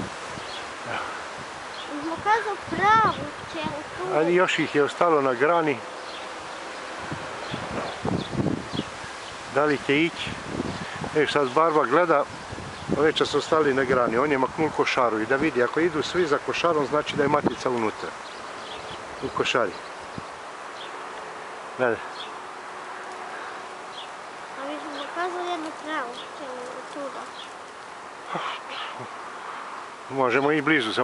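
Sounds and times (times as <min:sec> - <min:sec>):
swarm of bees buzzing: 0:00.0 - 0:09.8
tree branches rustling: 0:00.0 - 0:31.0.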